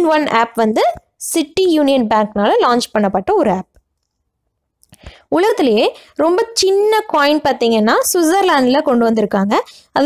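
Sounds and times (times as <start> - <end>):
person speaking: 0.0 - 3.8, 4.8 - 10.0.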